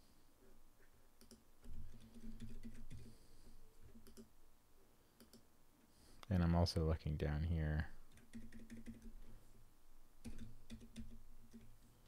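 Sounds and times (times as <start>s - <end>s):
computer keyboard clicks: 3.9s - 4.3s, 5.2s - 5.4s, 8.1s - 9.1s, 10.2s - 11.7s.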